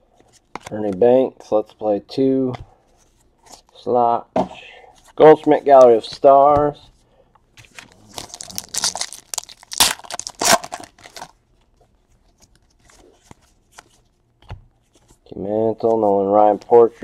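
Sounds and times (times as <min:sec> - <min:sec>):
foil wrapper tearing and crinkling: 0:07.9 - 0:11.3.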